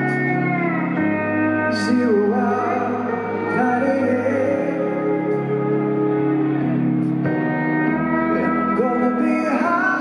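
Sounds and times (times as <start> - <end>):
live band: 0.0 - 10.0
steel guitar chords: 0.0 - 10.0.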